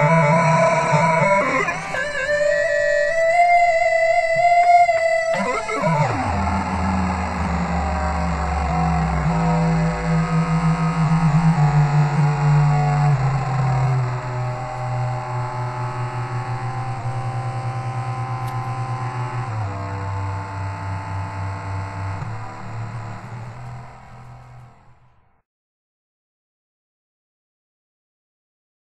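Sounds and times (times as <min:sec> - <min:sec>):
low buzzy electronic drone: 0:00.0 - 0:25.4.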